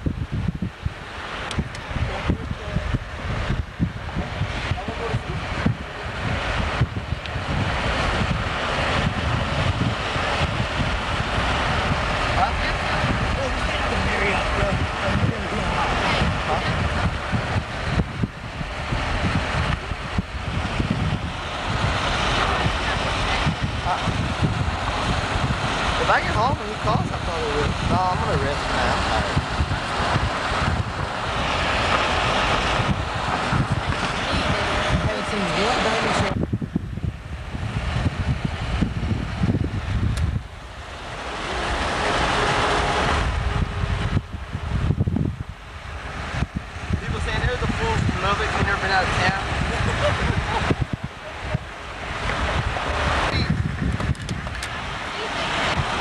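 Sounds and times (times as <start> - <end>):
car road noise: 0.0 - 56.0
wind rushing over microphone: 0.0 - 56.0.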